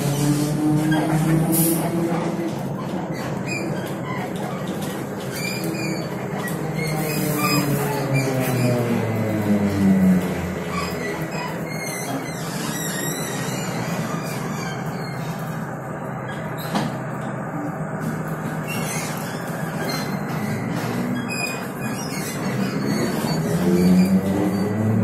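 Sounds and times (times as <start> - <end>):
trolleybus rumble: 0.0 - 25.0.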